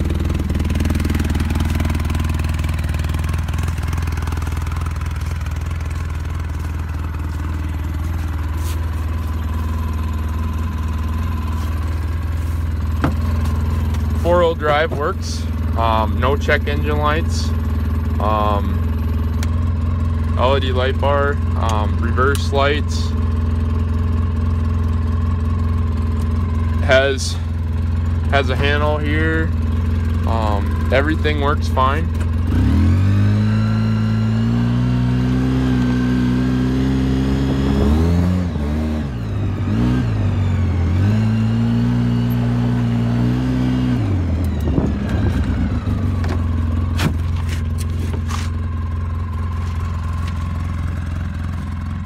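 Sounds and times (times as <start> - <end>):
engine idling: 0.0 - 52.0.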